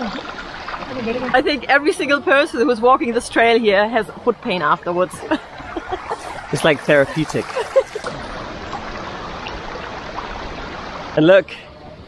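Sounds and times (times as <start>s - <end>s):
water rushing over terraces: 0.0s - 12.0s.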